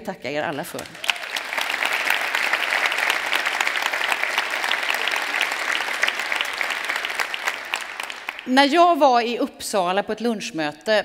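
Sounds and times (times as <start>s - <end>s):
audience applauding: 0.7s - 8.5s.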